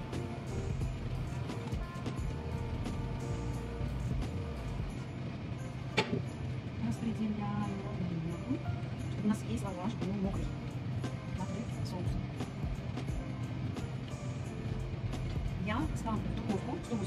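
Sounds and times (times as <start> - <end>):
background music sustained tones: 0.0 - 17.0.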